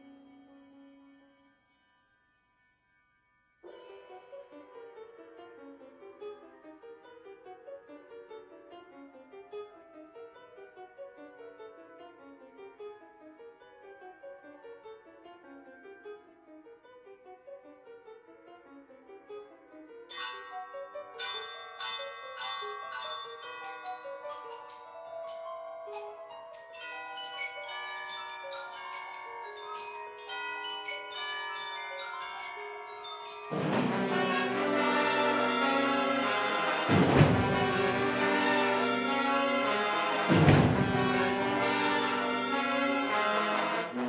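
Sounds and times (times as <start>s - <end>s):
ringing metal mallet percussion: 20.1s - 34.0s
wind ensemble held tones: 33.5s - 44.0s.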